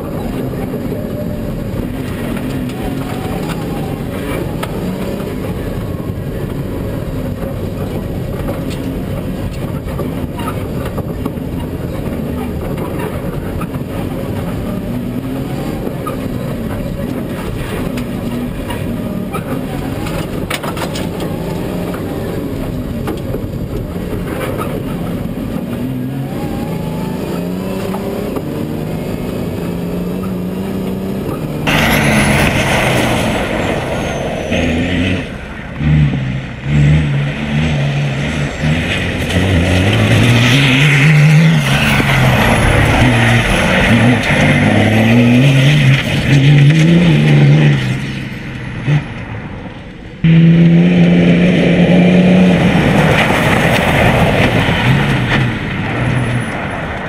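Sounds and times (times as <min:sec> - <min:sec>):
rally car engine revving: 0:00.0 - 0:57.0
tyres rushing on gravel: 0:31.2 - 0:35.8, 0:38.2 - 0:46.6, 0:52.3 - 0:57.0.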